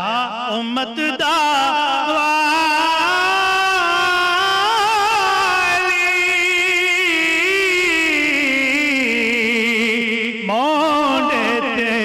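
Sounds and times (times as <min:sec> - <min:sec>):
man singing long wavering note: 0:00.0 - 0:12.0.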